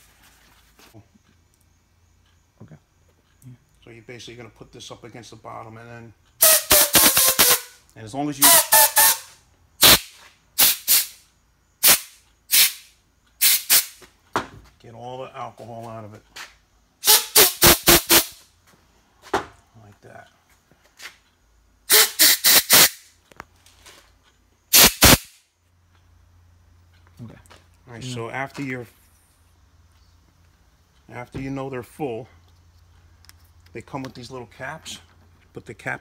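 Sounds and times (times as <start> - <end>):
compressed air hissing blasts: 6.4 - 7.8, 8.4 - 11.2, 11.8 - 14.0, 17.0 - 18.4, 21.9 - 23.1, 24.7 - 25.4.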